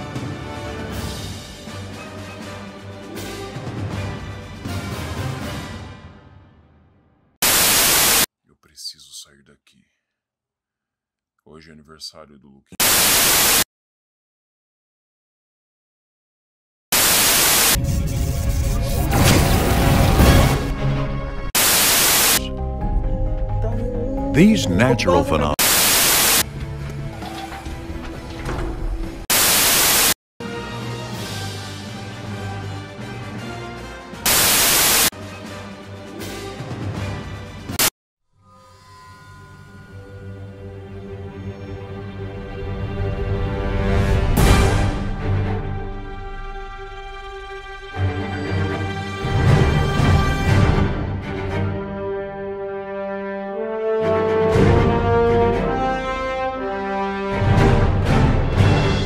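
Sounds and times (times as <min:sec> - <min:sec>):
music: 0:00.0 - 0:07.4, 0:17.8 - 0:21.6, 0:22.4 - 0:25.6, 0:26.4 - 0:29.3, 0:30.4 - 0:34.4, 0:35.1 - 0:59.0
television static hiss: 0:07.4 - 0:08.3, 0:21.6 - 0:22.5, 0:25.6 - 0:26.4
tv static hiss: 0:07.4 - 0:08.3, 0:12.8 - 0:13.7, 0:17.0 - 0:17.8, 0:21.6 - 0:22.5, 0:25.6 - 0:26.4, 0:29.3 - 0:30.2, 0:34.3 - 0:35.1.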